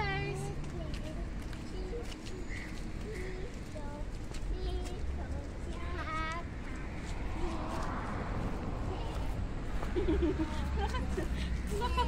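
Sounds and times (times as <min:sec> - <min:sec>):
footsteps on brick paving: 0:00.4 - 0:12.0.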